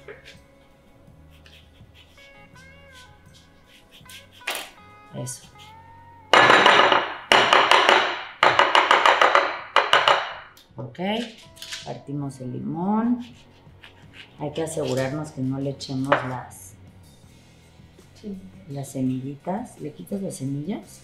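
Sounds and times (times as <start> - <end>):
grater scraping lemon peel: 1.4 - 4.8.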